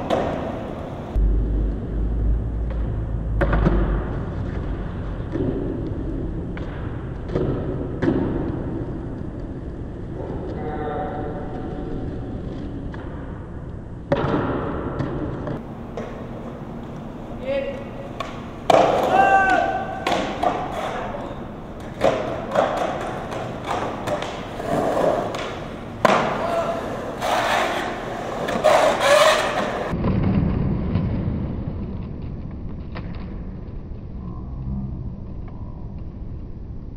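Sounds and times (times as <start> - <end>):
skateboard thuds and knocks: 0.0 - 0.7, 18.2 - 21.0, 21.8 - 30.4
skateboard wheels rolling on concrete: 0.0 - 10.6, 14.1 - 34.2
people shouting: 18.8 - 21.2, 26.1 - 27.2.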